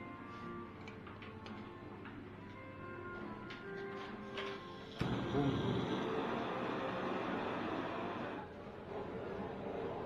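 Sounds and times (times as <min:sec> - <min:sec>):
faint background music: 0:00.0 - 0:10.0
torch flame hissing: 0:04.9 - 0:08.3.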